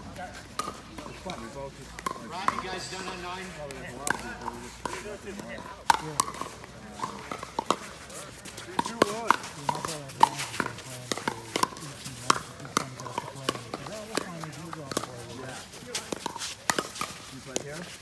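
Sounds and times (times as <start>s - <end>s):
people talking: 0.0s - 16.6s, 17.2s - 18.0s
ball bouncing on court: 0.0s - 17.9s
paddles striking plastic ball: 0.5s - 7.9s, 8.7s - 15.2s, 16.0s - 17.7s.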